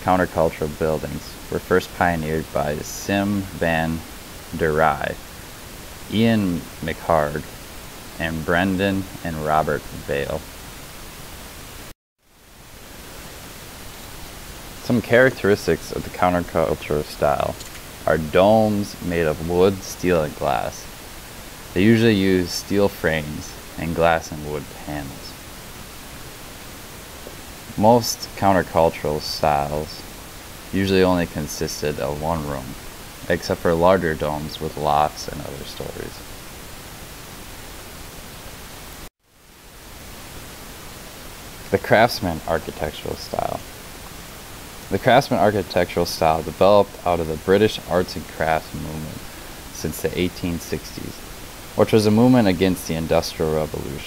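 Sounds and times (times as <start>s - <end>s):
recording background hiss: 0.0s - 54.0s.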